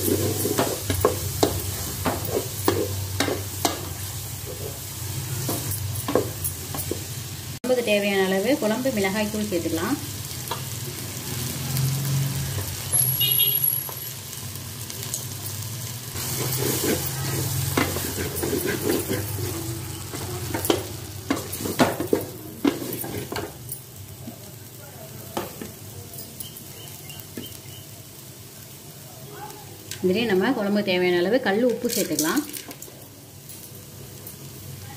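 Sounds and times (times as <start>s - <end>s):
spatula scraping pot: 0.0s - 3.4s, 16.2s - 23.5s
food sizzling in oil: 0.0s - 34.9s.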